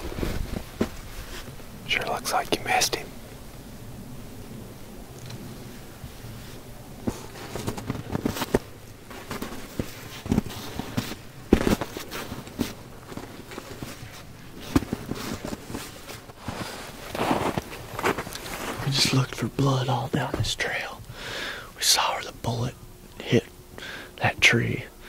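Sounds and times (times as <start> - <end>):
boots stepping through snow: 6.5 - 18.9.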